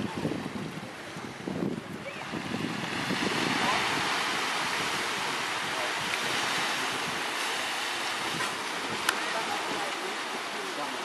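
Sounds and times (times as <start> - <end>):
waves washing onto beach: 0.0 - 11.0.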